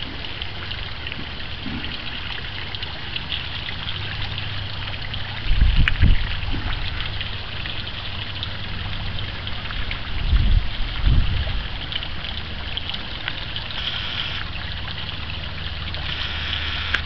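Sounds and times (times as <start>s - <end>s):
fountain water splashing: 0.0s - 17.0s.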